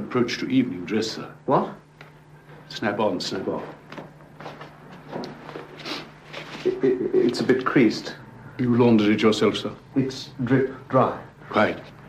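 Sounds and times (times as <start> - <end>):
clothes rustling: 3.6 - 7.6.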